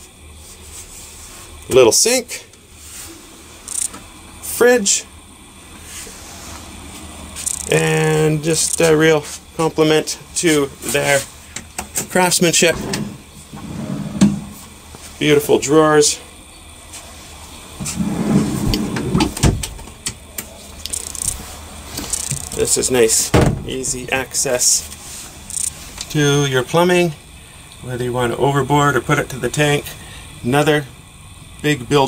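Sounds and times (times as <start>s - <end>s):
low steady hum: 0.0s - 32.0s
drawer rolling on ball-bearing slides: 12.6s - 14.6s, 17.8s - 19.5s.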